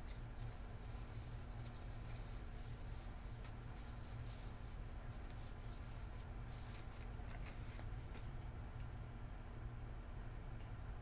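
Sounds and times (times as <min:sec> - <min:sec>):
faint rustles: 0:00.0 - 0:08.4
low steady hum: 0:00.0 - 0:11.0.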